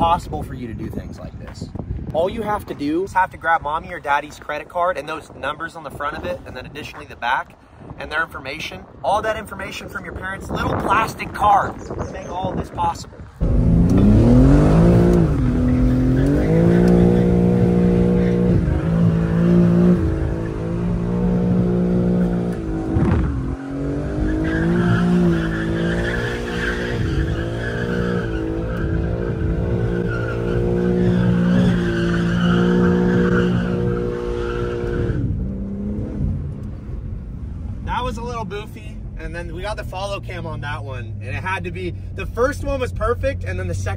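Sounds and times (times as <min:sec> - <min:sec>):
car engine revving hard: 0:13.4 - 0:36.6
tyres squealing: 0:23.5 - 0:35.2.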